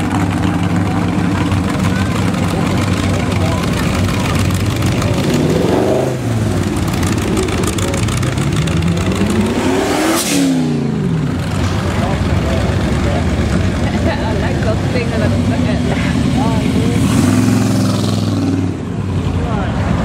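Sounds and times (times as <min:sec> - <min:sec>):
cars with loud exhausts rumbling: 0:00.0 - 0:20.0
engine revving: 0:00.0 - 0:20.0.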